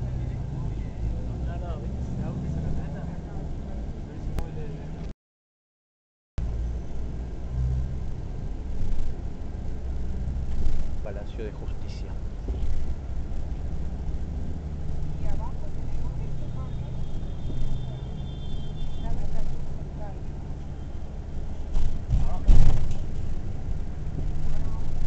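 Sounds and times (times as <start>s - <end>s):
road noise: 0.0s - 5.1s, 6.4s - 25.0s
vehicle engine drone: 0.0s - 5.1s, 6.4s - 25.0s.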